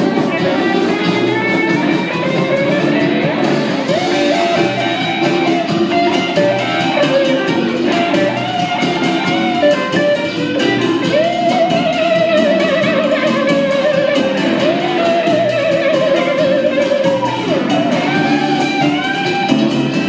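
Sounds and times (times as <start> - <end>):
lead guitar long wavering notes: 0.0 - 20.0
live blues rock band: 0.0 - 20.0.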